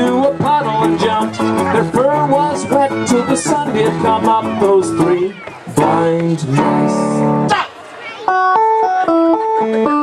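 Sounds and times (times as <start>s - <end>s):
live band melodic run: 0.0s - 10.0s.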